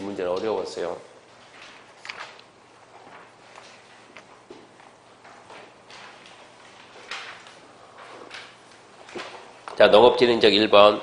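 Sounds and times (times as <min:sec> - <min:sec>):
book pages turning: 0:01.4 - 0:09.8.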